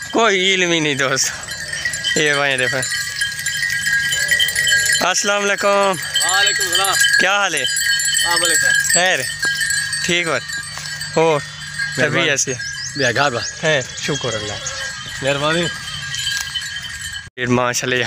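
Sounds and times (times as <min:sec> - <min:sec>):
sheep bleating: 0:03.8 - 0:05.2, 0:13.9 - 0:15.9.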